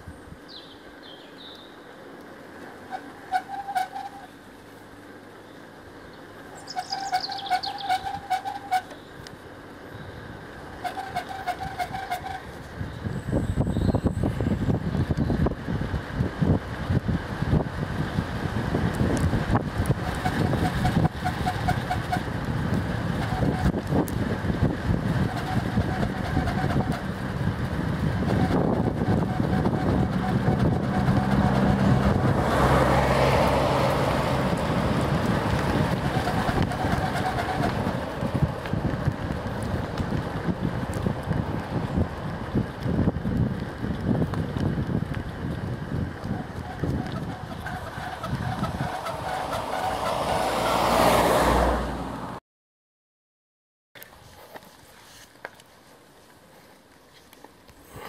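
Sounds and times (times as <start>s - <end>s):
tyres rumbling on asphalt: 0.0s - 52.4s
wind buffeting microphone: 9.9s - 51.3s.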